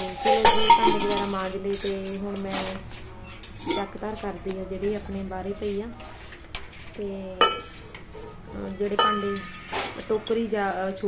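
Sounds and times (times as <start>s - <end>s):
steel utensils clanking: 0.0s - 11.0s.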